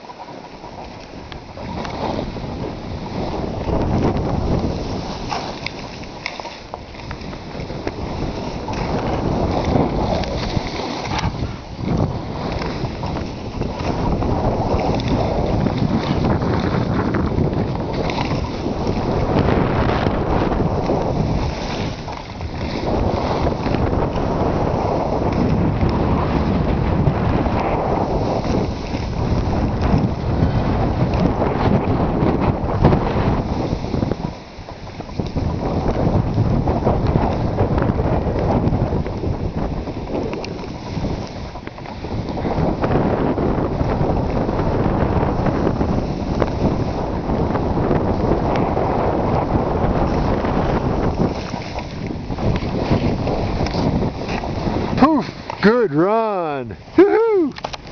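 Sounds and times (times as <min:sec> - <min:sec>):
wind rushing over microphone: 0:00.0 - 0:57.9
skis hissing through snow: 0:07.6 - 0:11.6, 0:20.6 - 0:22.1.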